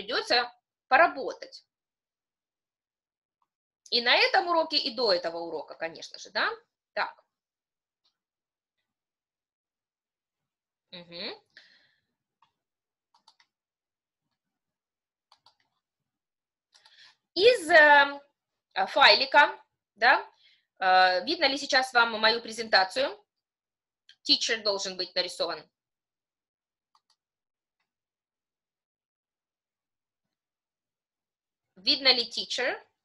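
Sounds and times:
computer mouse clicks: 12.4 - 13.6, 15.3 - 15.8, 26.9 - 27.2.

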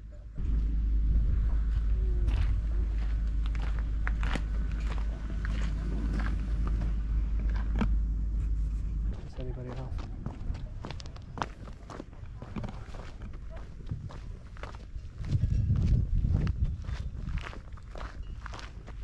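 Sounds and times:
low rumble on microphone: 0.0 - 19.0
footsteps on gravel: 0.6 - 19.0.

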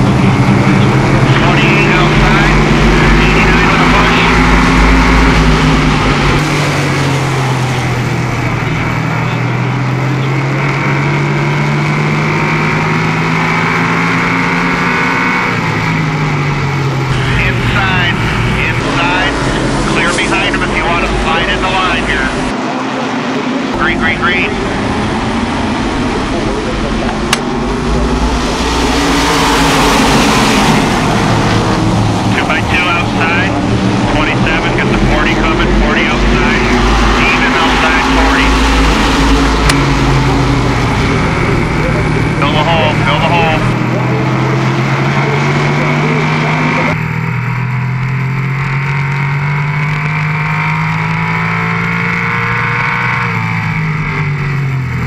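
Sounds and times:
voices: 0.0 - 11.0, 17.0 - 47.0
race car engine on board: 0.0 - 55.0
race cars passing: 0.0 - 55.0.

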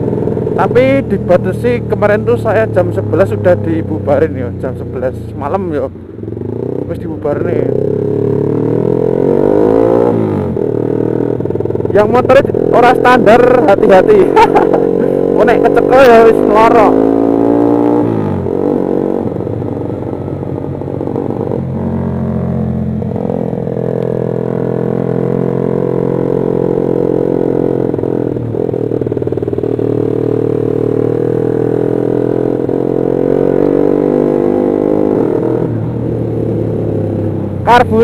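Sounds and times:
motorcycle engine running: 0.0 - 38.0.

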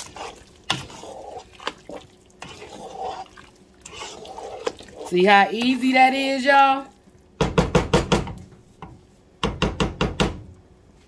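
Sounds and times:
spoon knocking against a pan: 7.4 - 8.4, 9.4 - 10.4.

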